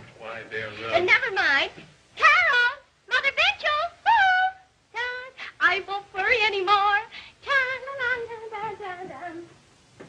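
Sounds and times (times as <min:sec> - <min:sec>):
high voice singing wordlessly: 0:02.2 - 0:09.6.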